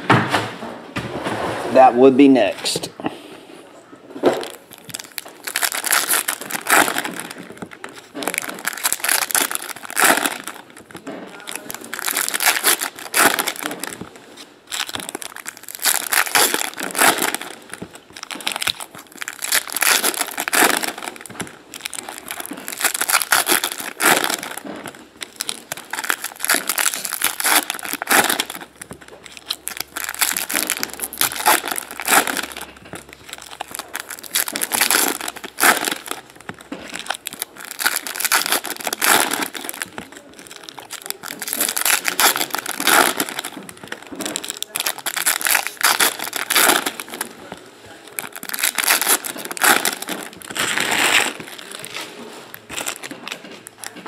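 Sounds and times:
foil wrappers tearing and crinkling: 4.2s - 54.0s.

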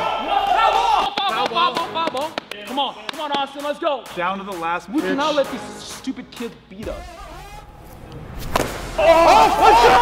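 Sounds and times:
bat cracking a ball: 8.4s - 8.8s.

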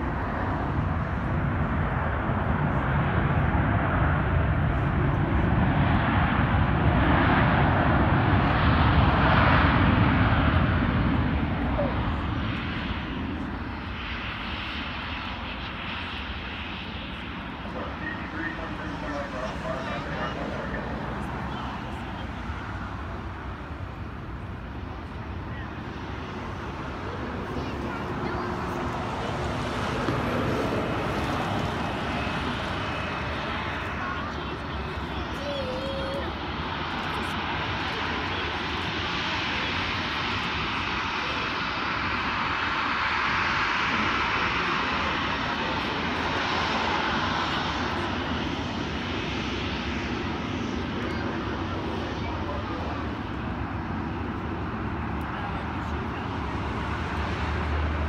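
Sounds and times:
jet engines roaring: 0.0s - 58.0s.

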